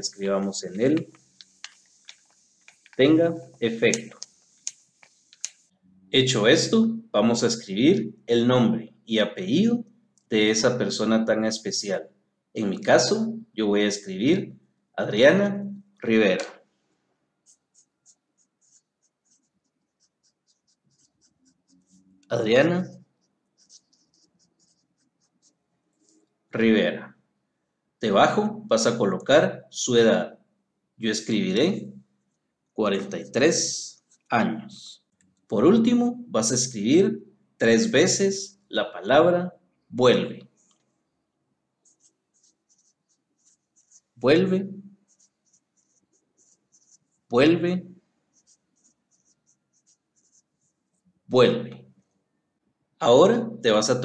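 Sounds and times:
marker scratching on paper: 0.6 - 5.7, 17.4 - 26.2, 33.0 - 34.3, 40.5 - 40.8, 41.8 - 47.3, 48.3 - 51.1.

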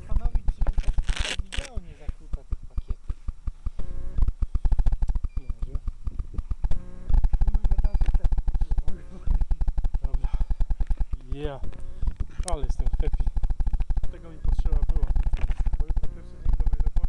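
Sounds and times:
camera handling noise on fabric: 0.0 - 17.0.

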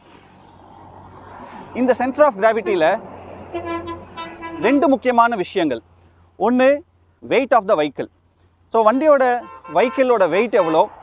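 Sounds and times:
man talking: 1.8 - 3.0, 4.6 - 5.8, 6.4 - 8.1, 8.7 - 11.0
vehicle horn: 3.5 - 4.8, 9.4 - 10.9.

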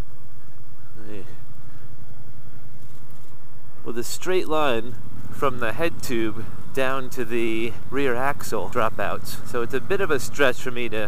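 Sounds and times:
person speaking: 1.0 - 1.4, 3.8 - 11.0.

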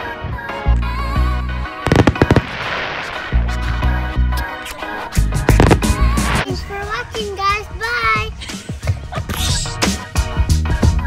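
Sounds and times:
music playing: 0.4 - 11.0
fireworks bangs: 1.9 - 4.0, 5.5 - 6.4
fireworks crackling: 1.9 - 4.1, 5.2 - 6.4.

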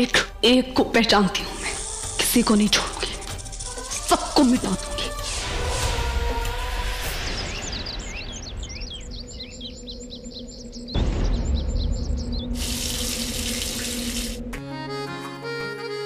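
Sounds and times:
background music: 0.0 - 16.0
birds chirping: 7.1 - 14.4
shower water running: 12.6 - 14.5.

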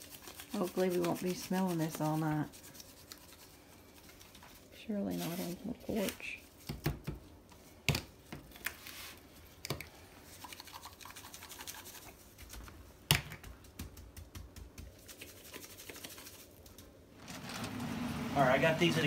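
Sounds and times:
seasoning shaker rattling: 0.0 - 4.3, 10.2 - 12.6, 13.4 - 17.0.

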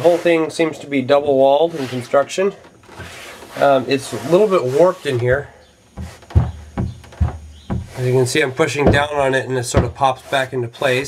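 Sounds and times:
fiberglass panel popping and knocking: 5.9 - 10.2.

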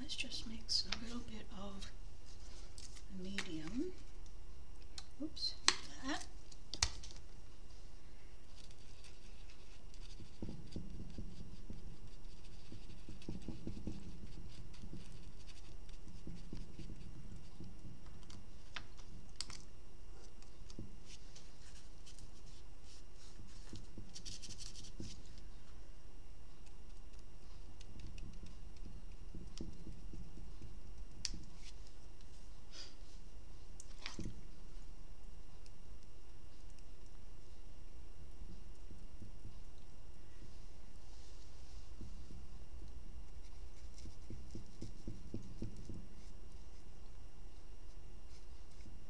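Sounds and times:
low room hum: 0.0 - 49.0
paintbrush scratching on plastic: 8.5 - 18.4, 20.2 - 25.5, 41.1 - 46.9, 47.5 - 49.0.

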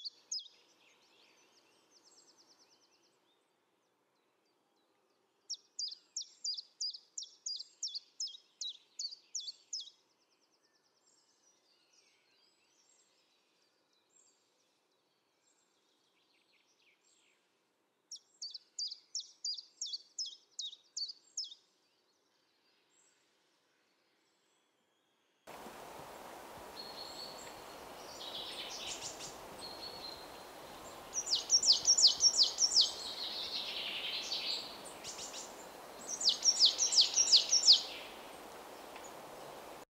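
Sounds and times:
small songbird singing: 0.0 - 3.4, 4.4 - 14.5, 18.1 - 23.0, 26.6 - 39.8
buzzy bird trill: 31.0 - 35.4, 36.0 - 38.1.

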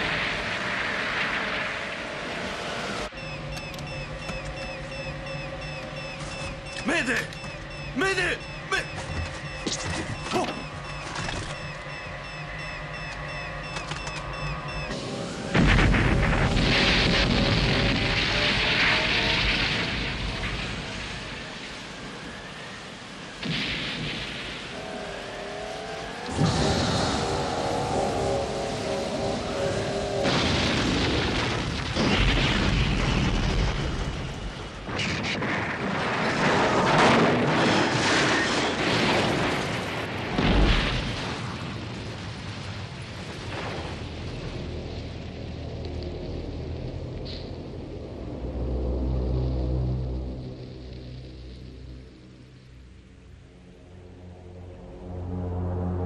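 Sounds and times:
rain: 0.0 - 9.4, 10.4 - 56.0
pitched whine: 0.0 - 35.1
crashing and explosions: 14.7 - 22.2, 23.2 - 24.8, 26.2 - 52.4.

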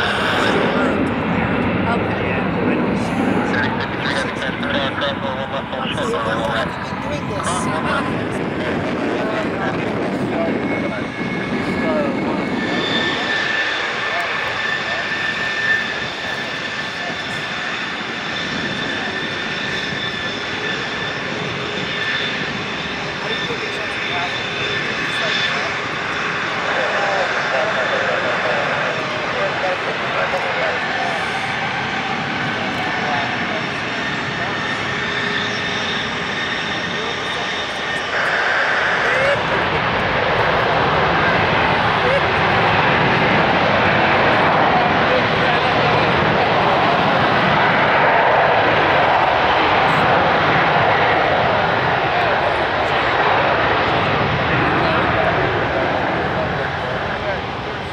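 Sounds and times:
jet engines whining: 0.0 - 57.9.

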